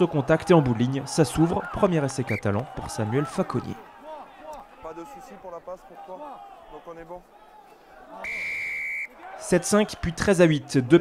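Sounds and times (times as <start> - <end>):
men's voices: 0.0 - 8.5
referee's whistle long blast: 8.2 - 9.2.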